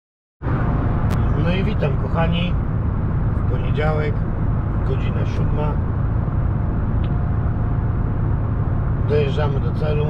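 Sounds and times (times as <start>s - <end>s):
truck engine and tyres rumbling: 0.4s - 10.0s.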